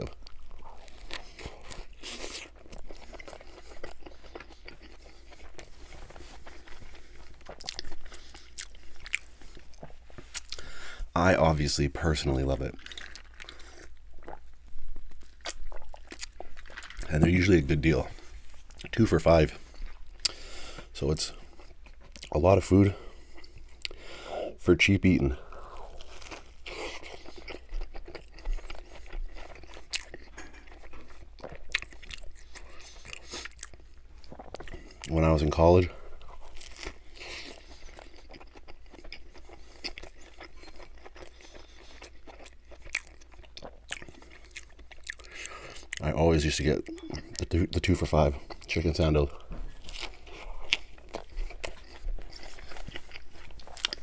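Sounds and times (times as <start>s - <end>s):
wet chewing sounds: 0.0s - 11.1s, 12.4s - 24.2s, 25.3s - 54.0s.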